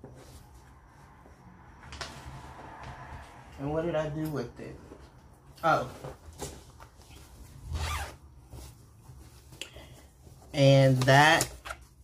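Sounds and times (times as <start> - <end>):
zipper rasp: 7.6 - 8.2.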